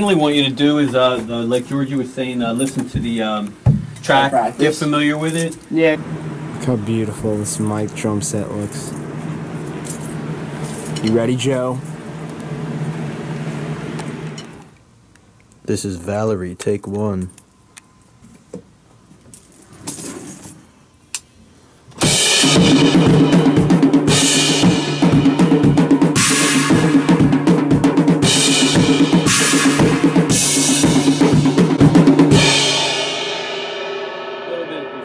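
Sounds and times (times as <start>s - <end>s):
cymbal crashes: 22.0s - 35.0s
drum kit playing heavy metal beat: 22.0s - 35.0s.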